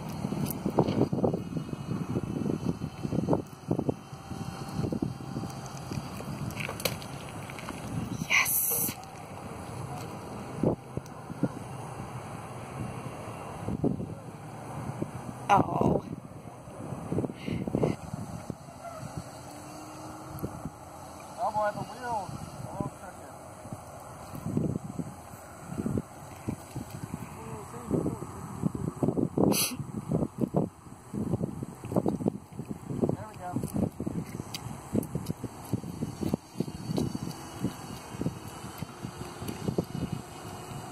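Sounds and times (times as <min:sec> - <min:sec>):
wind buffeting microphone: 0:00.0 - 0:40.9.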